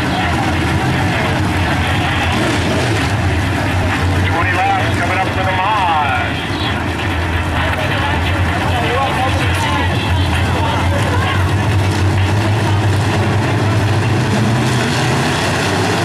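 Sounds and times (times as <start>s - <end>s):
race car engines running: 0.0s - 16.0s.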